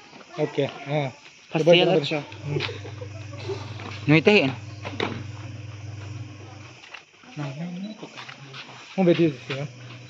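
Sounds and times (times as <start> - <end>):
steady low hum: 2.3 - 6.8, 9.6 - 10.0.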